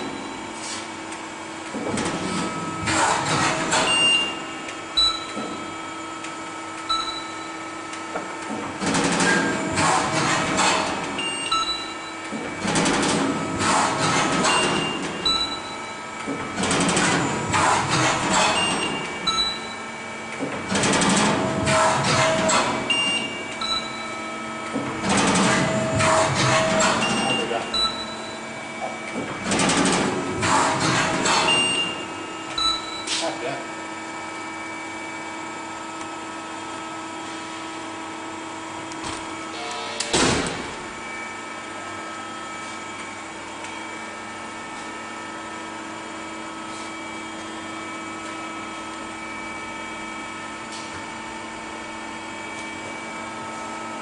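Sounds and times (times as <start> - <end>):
irregular machine noise: 0.0 - 33.7.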